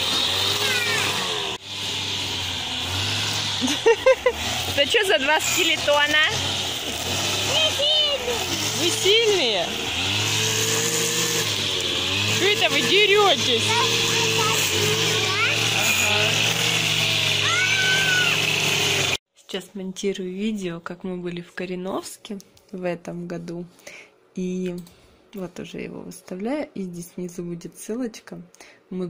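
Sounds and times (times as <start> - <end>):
grass trimmer engine running: 0.0 - 19.2
children's voices: 0.4 - 1.3, 7.3 - 8.8, 13.4 - 16.0, 17.4 - 18.4.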